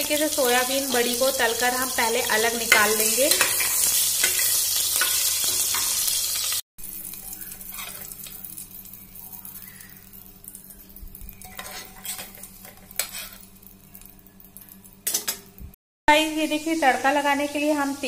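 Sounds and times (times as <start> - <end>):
food sizzling in hot oil: 0.0 - 15.6, 16.2 - 18.0
spatula stirring in pot: 11.4 - 13.4.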